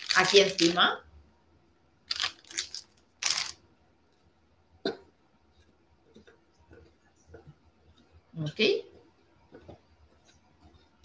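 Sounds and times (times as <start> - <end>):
plastic bag rustling: 0.0 - 0.8, 2.1 - 3.6.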